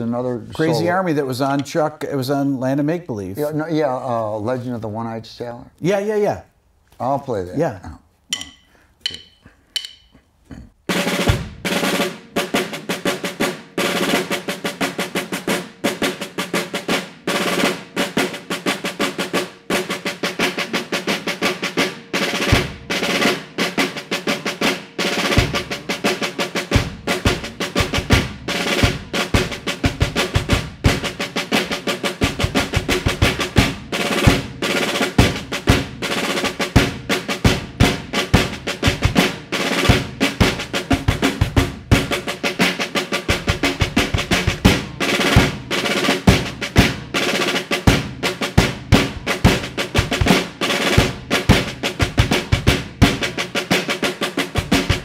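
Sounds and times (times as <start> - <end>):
snare drum rolls: 10.9 - 55.0.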